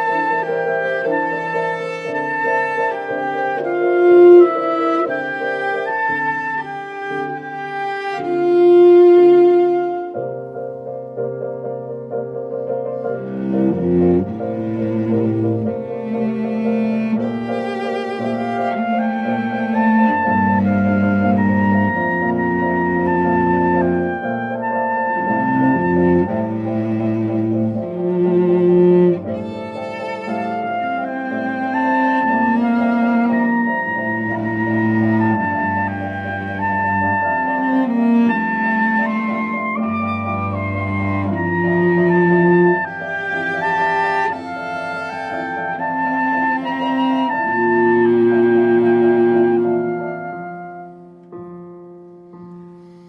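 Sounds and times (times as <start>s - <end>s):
soprano saxophone: 0.0s - 10.4s, 17.1s - 51.4s
cello long low notes: 0.0s - 11.4s, 12.1s - 51.4s
piano: 0.0s - 53.0s.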